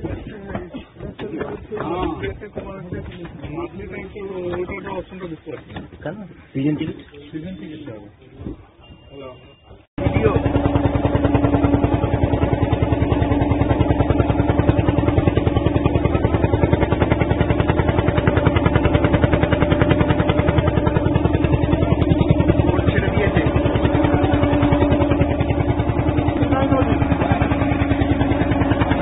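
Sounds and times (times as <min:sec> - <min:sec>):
ferry engine chugging: 0:00.0 - 0:29.0.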